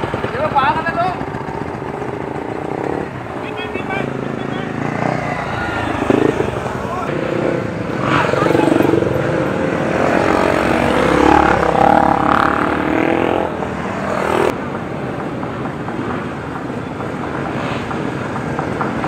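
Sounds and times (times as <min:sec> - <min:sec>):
dirt bike engines passing: 0:00.0 - 0:19.0.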